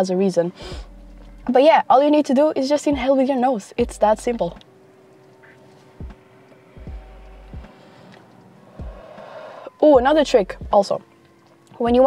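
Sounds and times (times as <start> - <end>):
faint background music: 0.0 - 12.0
soft puffs of breath: 7.6 - 9.8
person inhaling smoke: 7.7 - 9.7.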